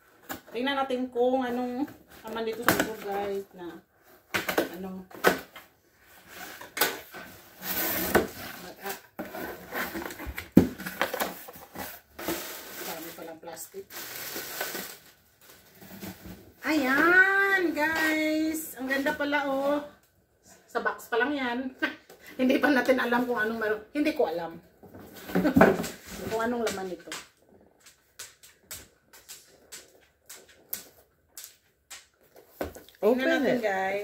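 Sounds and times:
plastic packaging crinkling: 12.1s - 16.0s.

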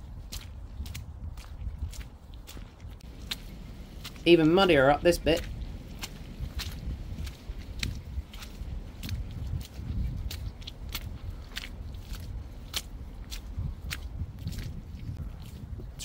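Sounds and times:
footsteps on muddy path: 0.0s - 16.0s
steady low rumble: 0.0s - 16.0s.

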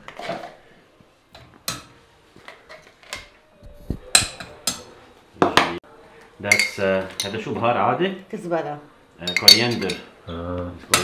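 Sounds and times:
metal spoon clinking on saucepan: 9.2s - 10.1s.

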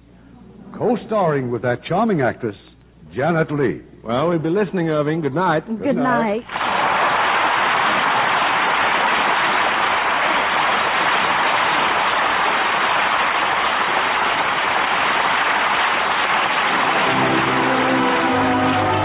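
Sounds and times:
audience applause: 6.4s - 19.0s
orchestral brass theme: 16.3s - 19.0s.

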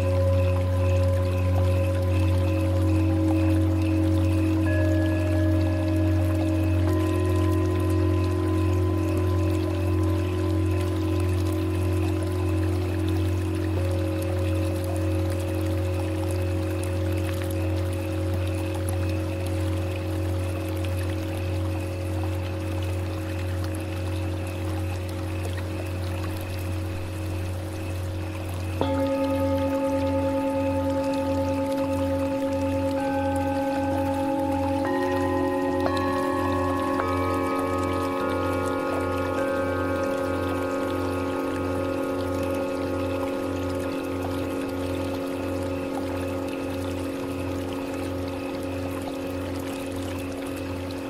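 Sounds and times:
singing bowl ringing tones: 0.0s - 51.0s
steady low hum: 0.0s - 51.0s.

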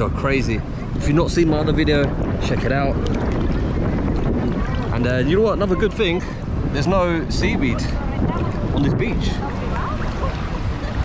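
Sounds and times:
wind rumbling on microphone: 0.0s - 11.0s
sea water sloshing: 0.4s - 11.0s.

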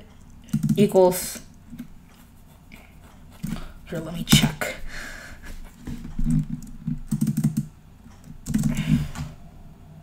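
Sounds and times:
typing on computer keyboard: 0.2s - 0.8s, 6.3s - 8.9s.

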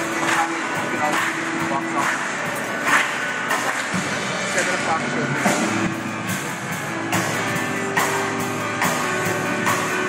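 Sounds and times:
drum kit beat: 0.0s - 10.0s
keyboard: 0.0s - 10.0s.

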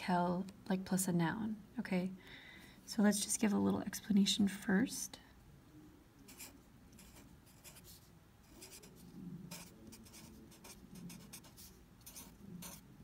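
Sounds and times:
pen scratching while writing: 6.3s - 12.8s.

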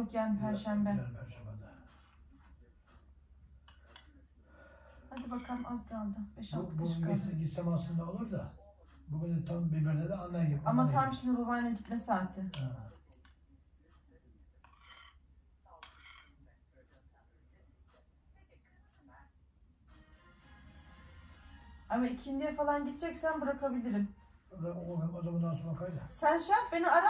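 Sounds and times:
metal spoon clinking on bowl: 5.2s - 5.9s, 11.5s - 13.3s, 14.6s - 15.2s, 15.8s - 16.4s
spoon clinking in a bowl: 15.8s - 16.4s.

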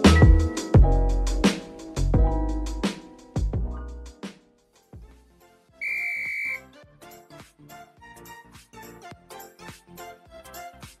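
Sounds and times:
shrill whistle blast: 5.8s - 6.6s.

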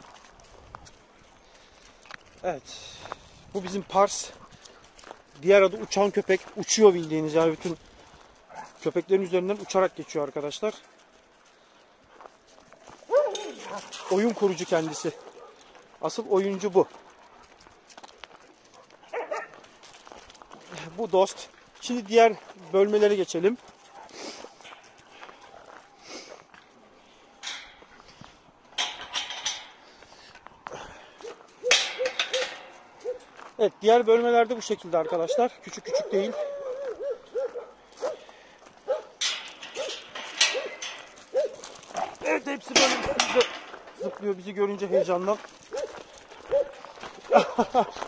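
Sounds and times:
scuffling noise: 0.0s - 28.7s, 34.8s - 48.0s
paws and steps on gravel: 0.0s - 48.0s
dog barking: 8.5s - 8.8s, 13.1s - 13.9s, 14.9s - 15.7s, 18.8s - 19.6s, 31.2s - 33.3s, 35.0s - 39.2s, 39.8s - 42.1s, 45.7s - 47.6s
dogs whining: 35.3s - 38.2s, 39.8s - 42.1s.

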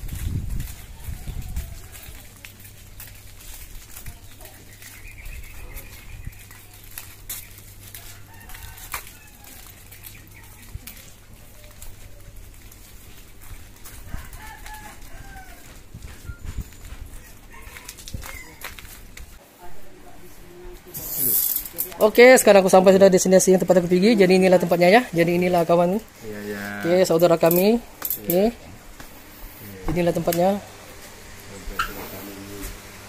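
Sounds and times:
footsteps: 0.0s - 33.0s
rooster crowing: 0.8s - 2.3s, 7.9s - 9.9s, 13.8s - 15.8s, 17.1s - 18.9s.

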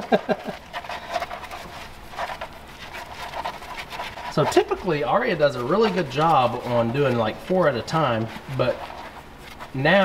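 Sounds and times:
puppies suckling and jostling: 0.0s - 10.0s.

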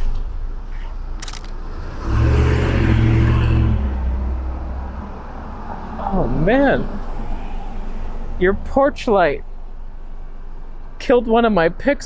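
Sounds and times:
car driving past: 1.6s - 8.8s.

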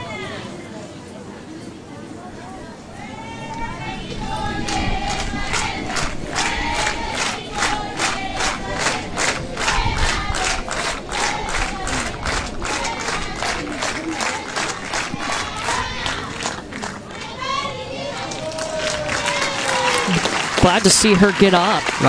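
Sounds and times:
voices chanting: 2.2s - 22.0s
spectators clapping in rhythm: 4.0s - 22.0s.

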